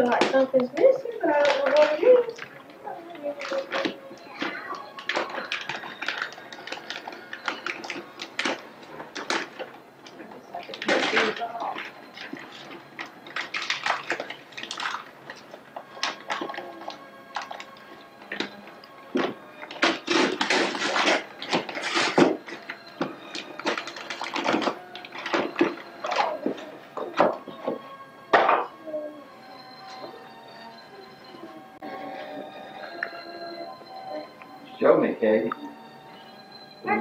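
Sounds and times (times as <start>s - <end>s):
faint background music: 0.0s - 37.0s
wrapping paper tearing: 4.6s - 9.7s, 10.7s - 18.6s, 19.6s - 26.6s.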